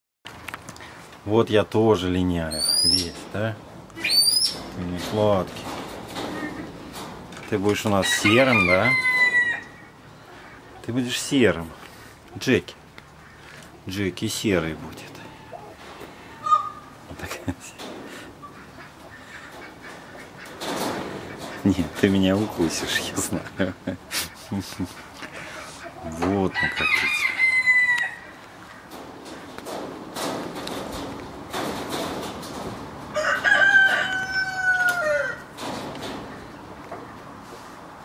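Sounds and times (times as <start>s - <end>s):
low background noise: 0.3s - 38.0s
rooster crowing: 8.0s - 9.8s, 26.5s - 28.4s, 33.1s - 35.5s.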